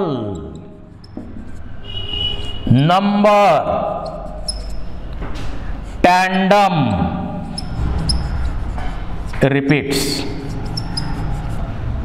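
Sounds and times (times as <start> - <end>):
marker writing on whiteboard: 0.3 - 2.7, 3.9 - 6.1, 6.8 - 12.0
marker squeaks: 0.4 - 2.7, 3.9 - 6.0, 7.3 - 9.4, 10.0 - 11.8.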